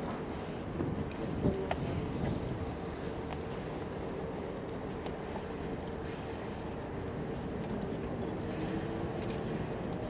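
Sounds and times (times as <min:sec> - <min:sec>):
wind on microphone: 0:00.7 - 0:03.2.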